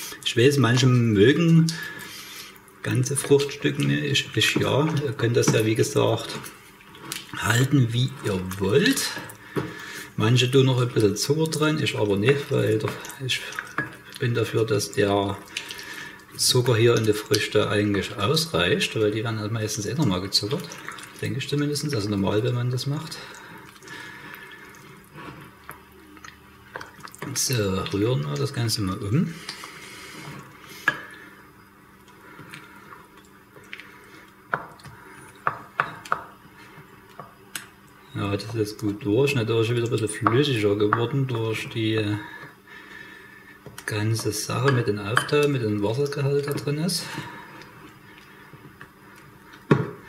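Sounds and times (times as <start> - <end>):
spoon stirring thick wet food: 0.6 - 50.0.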